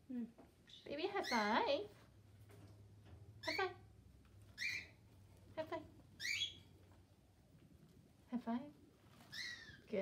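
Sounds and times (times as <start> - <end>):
guinea pig squeaking: 0.7 - 1.9, 3.4 - 6.8, 9.1 - 10.0.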